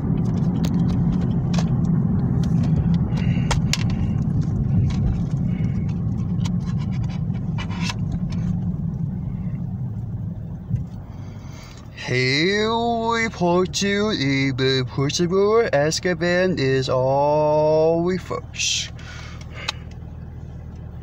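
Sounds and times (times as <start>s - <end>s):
car cabin rumble: 0.0s - 21.0s.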